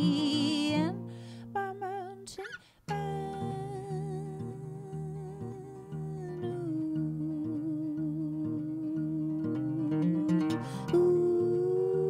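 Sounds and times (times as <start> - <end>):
acoustic guitar: 0.0 - 12.0
person singing a line: 1.6 - 12.0.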